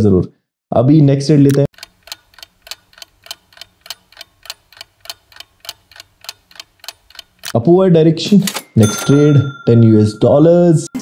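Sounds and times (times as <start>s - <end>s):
clock ticking: 1.5s - 7.6s.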